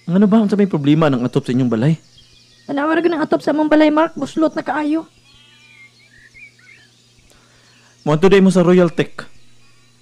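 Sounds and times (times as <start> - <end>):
faint bird chirps: 0.0 - 10.0
low electrical hum: 0.0 - 10.0.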